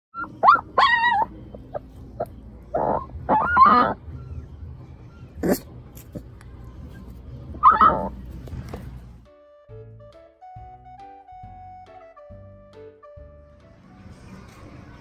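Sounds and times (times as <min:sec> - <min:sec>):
puppy whining and yelping: 0:00.2 - 0:08.3.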